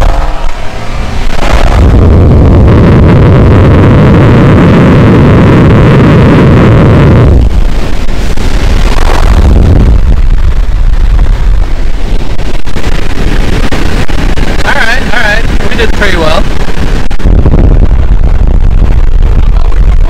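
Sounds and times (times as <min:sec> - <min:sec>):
car exhaust roaring: 0:00.0 - 0:20.0
wind and road noise rush: 0:00.0 - 0:20.0.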